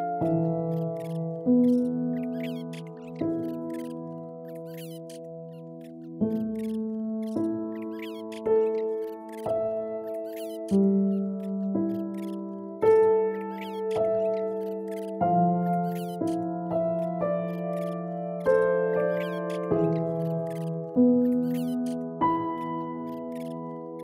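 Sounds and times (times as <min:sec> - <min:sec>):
faint high chirps: 0:00.0 - 0:24.0
slow calm piano music: 0:00.0 - 0:24.0.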